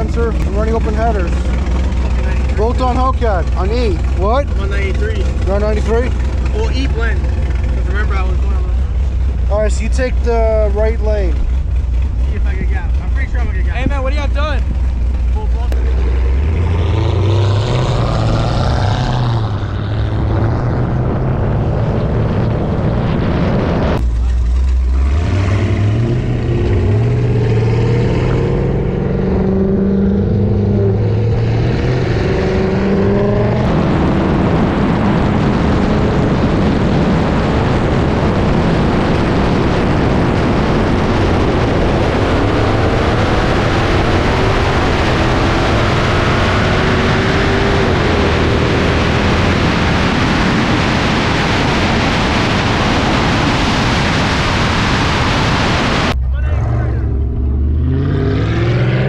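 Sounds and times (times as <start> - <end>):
engines accelerating hard: 0.0 - 59.0
wind noise at speed: 8.9 - 15.3, 16.0 - 24.1, 25.2 - 56.2.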